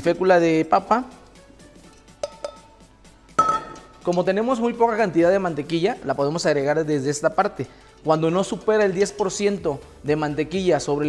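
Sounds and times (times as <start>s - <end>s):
metal mixing bowls clinking: 1.8s - 9.8s.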